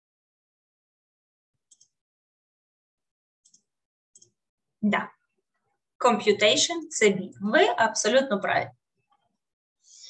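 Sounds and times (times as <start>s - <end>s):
computer mouse clicks: 1.7s - 2.0s, 3.4s - 4.4s.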